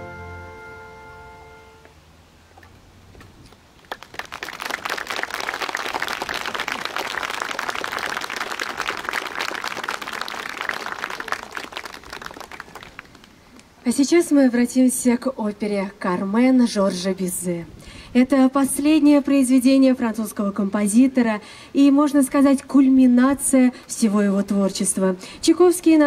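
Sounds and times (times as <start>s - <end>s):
orchestra held chord: 0.0s - 1.8s
audience applause: 3.8s - 13.4s.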